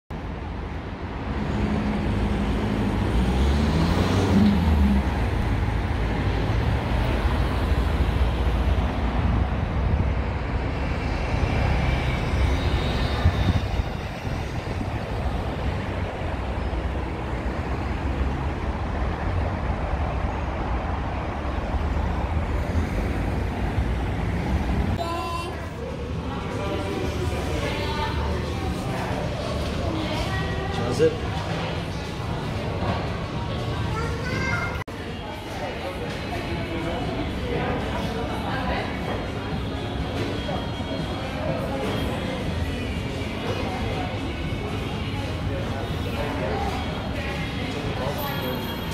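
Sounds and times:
road traffic rumble: 0.1s - 48.9s
vehicle engine: 0.2s - 34.9s.

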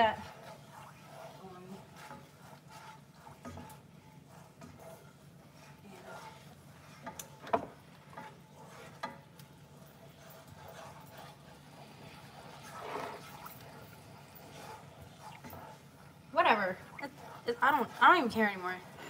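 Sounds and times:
wooden utensil scraping frying pan: 0.0s - 19.0s.

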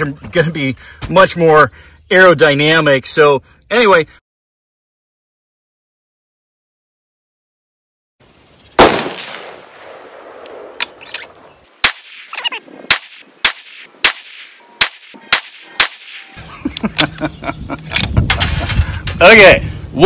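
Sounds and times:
rifle shot with echo: 8.8s - 11.0s, 12.9s - 16.3s.

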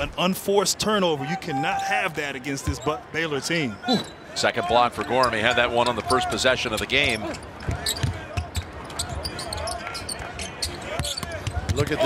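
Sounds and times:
players calling out: 1.0s - 12.0s.

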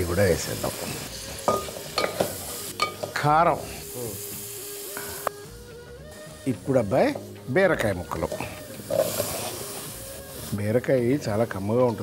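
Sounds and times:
food sizzling in a pan: 0.0s - 12.0s
spatula stirring in a pan: 7.1s - 12.0s.

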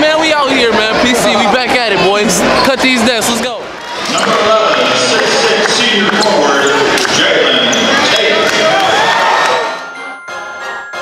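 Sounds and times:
crowd noise: 0.0s - 11.0s
music of steady held tones: 9.8s - 11.0s.

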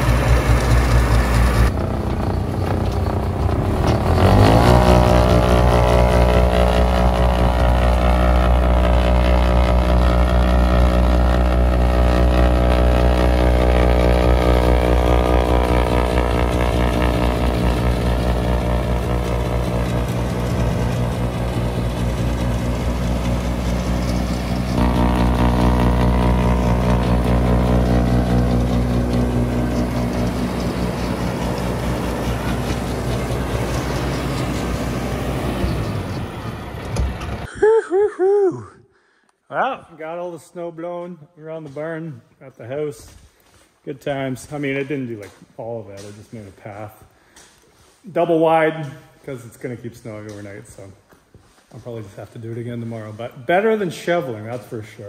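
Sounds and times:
snowblower throwing snow: 0.0s - 37.5s
tractor diesel engine running: 0.0s - 37.5s.

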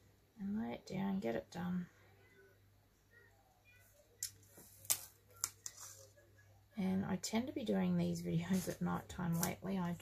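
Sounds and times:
paper rustle: 4.5s - 6.2s.

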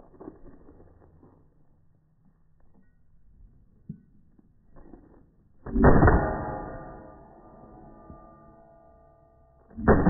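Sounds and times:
rifle shot: 5.7s - 7.7s, 9.8s - 10.0s
steel target ringing: 5.7s - 10.0s.

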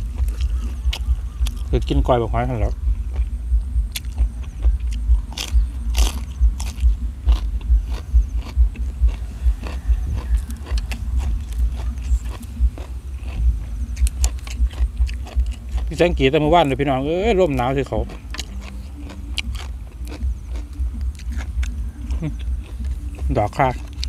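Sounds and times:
person chewing crunchy food: 0.0s - 24.0s.

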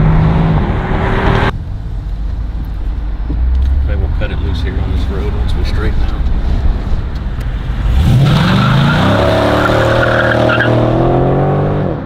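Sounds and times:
car engine accelerating hard: 7.4s - 12.0s.

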